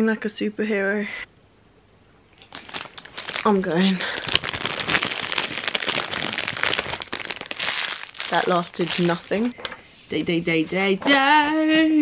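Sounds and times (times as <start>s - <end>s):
foil wrapper crinkling: 2.4s - 9.5s.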